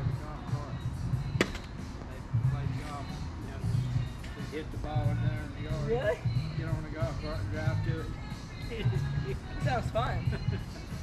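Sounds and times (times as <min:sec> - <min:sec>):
background music: 0:00.0 - 0:11.0
putter striking golf ball: 0:01.4 - 0:01.7.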